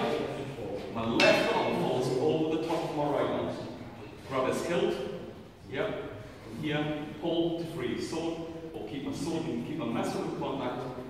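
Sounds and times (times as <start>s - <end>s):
man talking in large hall: 0.0s - 11.0s.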